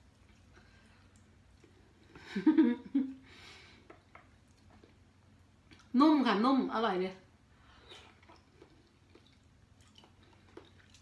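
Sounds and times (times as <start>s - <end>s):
woman's wordless voiced sound: 5.9s - 7.2s.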